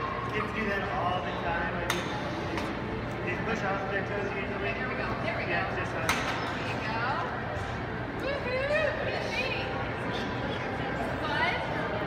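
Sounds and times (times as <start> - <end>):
voices chattering in a hall: 0.0 - 12.0.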